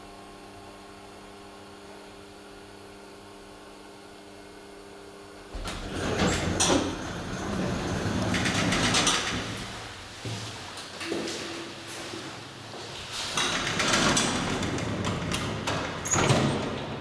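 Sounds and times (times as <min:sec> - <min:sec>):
elevator doors clattering open: 0:05.5 - 0:10.0, 0:13.0 - 0:17.0
elevator low hum: 0:05.5 - 0:17.0.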